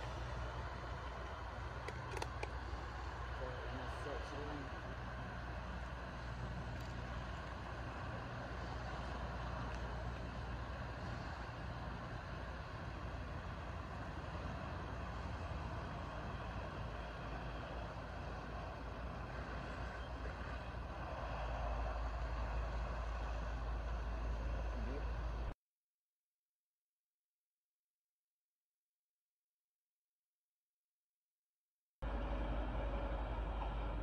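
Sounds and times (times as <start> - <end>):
fire truck engine rumble: 0.0 - 25.6, 32.0 - 34.0.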